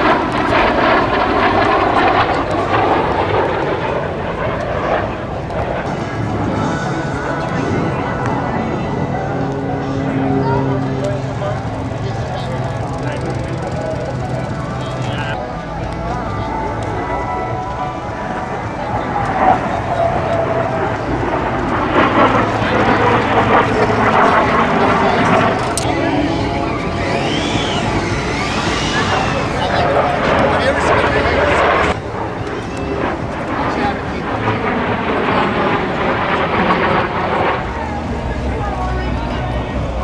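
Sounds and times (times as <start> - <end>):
indistinct crowd voices: 0.0 - 40.0
low engine noise: 0.0 - 40.0.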